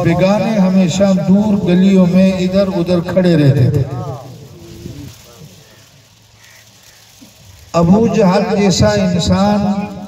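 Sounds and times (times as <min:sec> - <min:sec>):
man speaking into a microphone: 0:00.0 - 0:05.7, 0:07.7 - 0:10.0
faint steady hiss: 0:00.0 - 0:10.0.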